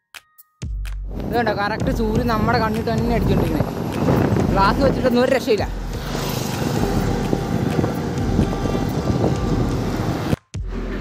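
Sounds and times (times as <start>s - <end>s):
wind on microphone: 1.1s - 10.4s
highway traffic: 1.1s - 11.0s
lorry passing close: 2.4s - 10.4s.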